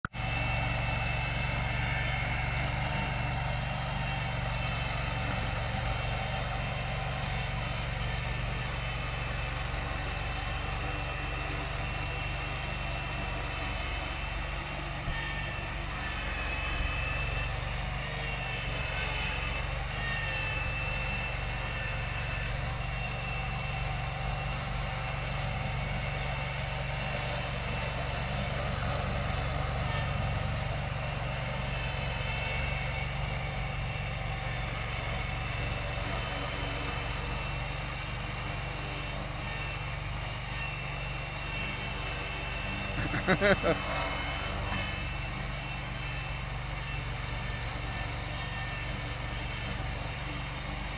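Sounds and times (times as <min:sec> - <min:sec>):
mower engine running: 0:00.0 - 0:50.9.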